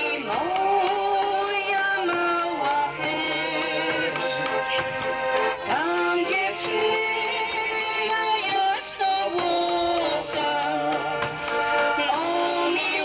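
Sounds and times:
accordion chords: 0.0 - 13.0
faint drum beats: 0.0 - 13.0
person singing: 0.0 - 13.0.

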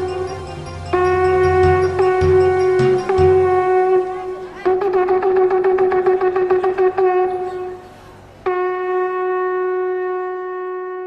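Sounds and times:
shofar blast: 0.0 - 7.8, 8.4 - 11.0.

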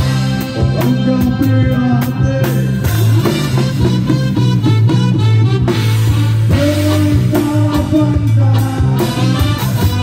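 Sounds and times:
live reggae band playing: 0.0 - 10.0.

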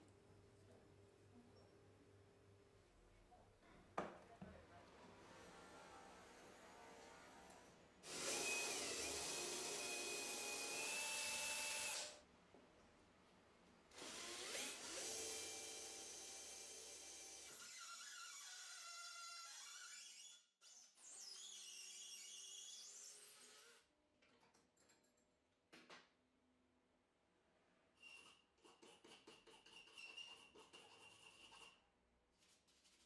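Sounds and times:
power drill boring into brass: 8.0 - 12.2.

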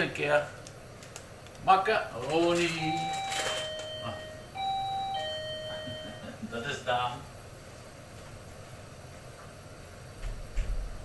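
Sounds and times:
doorbell ding-dong chime: 2.8 - 6.3.

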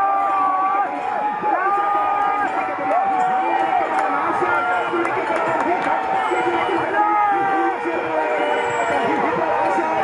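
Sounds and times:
large crowd noise: 0.0 - 10.0.

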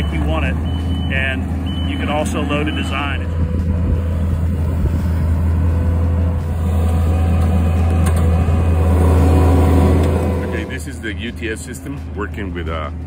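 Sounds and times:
track loader diesel engine: 0.0 - 13.0.

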